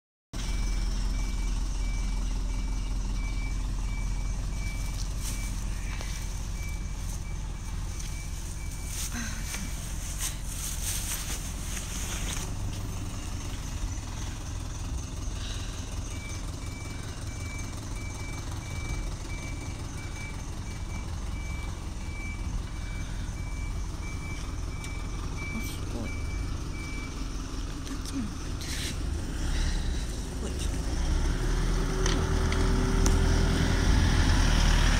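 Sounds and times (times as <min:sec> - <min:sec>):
truck engine running: 0:00.4 - 0:34.9
truck reversing alarm beeping: 0:00.4 - 0:34.9.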